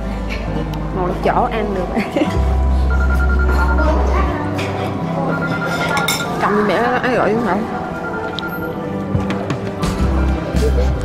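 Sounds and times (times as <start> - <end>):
tableware clinking: 4.6 - 6.7.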